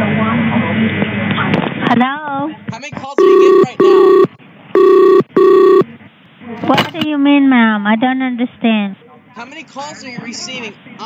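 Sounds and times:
phone-line voice: 0:03.1 - 0:05.8
telephone ringing tone: 0:03.2 - 0:05.8.

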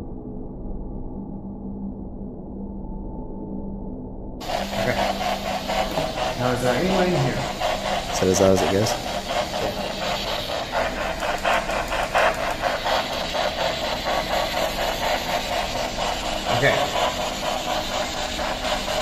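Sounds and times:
radio static bursts: 0:04.4 - 0:19.0
snatches of broadcast sound: 0:04.4 - 0:19.0.

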